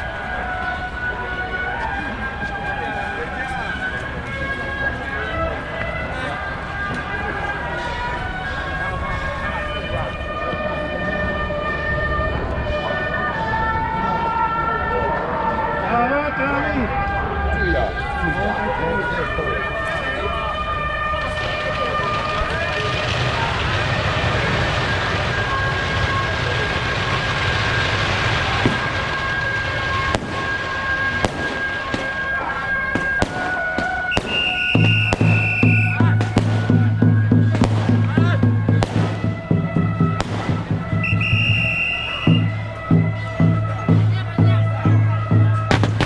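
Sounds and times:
voices: 0.0s - 46.0s
firecrackers popping: 18.1s - 46.0s
procession music: 28.2s - 46.0s.

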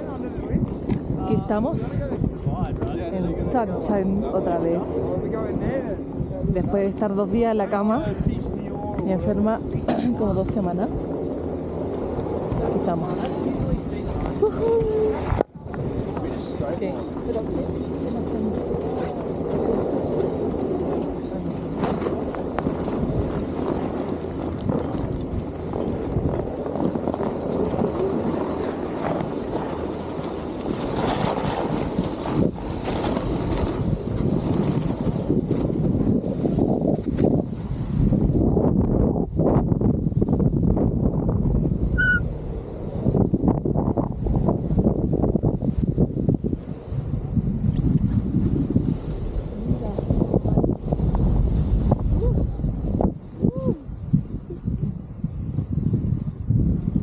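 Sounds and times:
wind buffeting microphone: 0.0s - 57.0s
snowboard scraping over snow: 1.2s - 53.4s.

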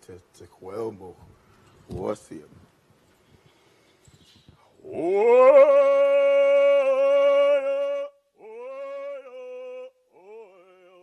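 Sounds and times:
person singing long held calls: 4.7s - 11.0s.

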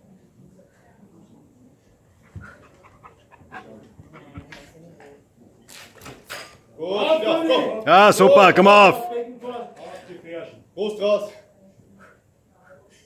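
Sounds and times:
faint background talk: 0.0s - 6.8s, 11.2s - 13.0s
loud shouting voices: 7.3s - 9.1s.

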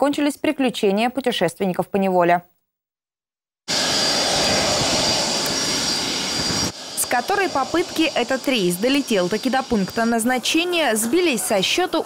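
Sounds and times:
jet engines running: 3.7s - 12.0s.

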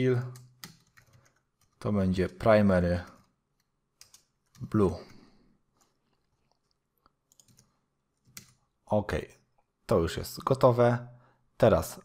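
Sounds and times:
computer keyboard clicks: 0.4s - 1.8s, 3.1s - 4.7s, 5.8s - 8.6s.

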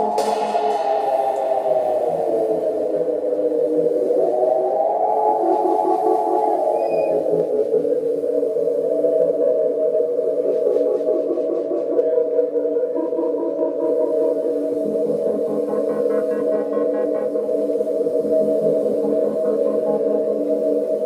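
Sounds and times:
ambient synthesizer chords: 0.0s - 21.0s.

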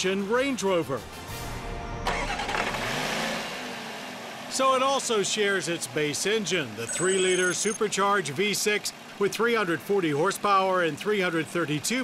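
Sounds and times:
background music: 0.0s - 3.2s
car engine running: 2.1s - 10.2s.

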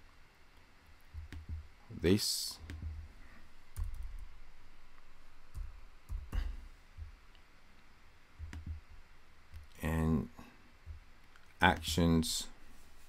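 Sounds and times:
keyboard keystrokes: 1.1s - 1.6s, 3.8s - 4.2s, 8.4s - 8.8s.

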